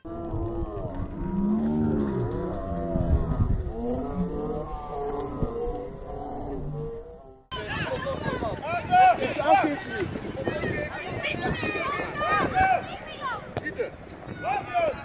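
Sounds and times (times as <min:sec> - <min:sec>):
low voices calling out: 0:00.0 - 0:07.8.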